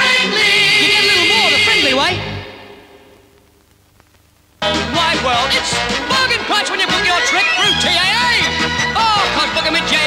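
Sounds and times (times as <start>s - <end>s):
group of voices singing a chord: 0.0s - 2.8s.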